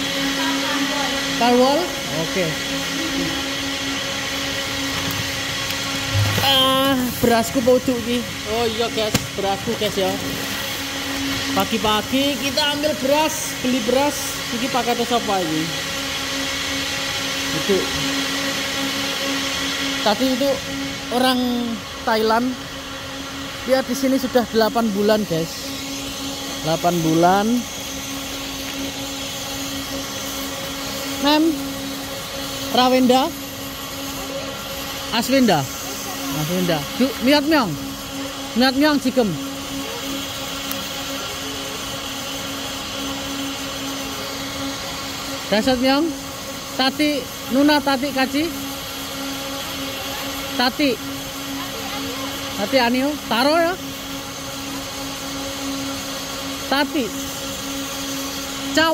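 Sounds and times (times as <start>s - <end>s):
mechanical hum: 0.0s - 58.9s
motor whirring: 0.0s - 58.9s.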